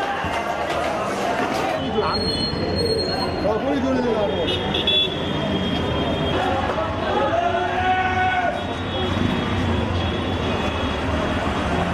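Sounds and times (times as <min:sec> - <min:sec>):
people in street: 0:00.0 - 0:11.9
street traffic rumble: 0:00.0 - 0:11.9.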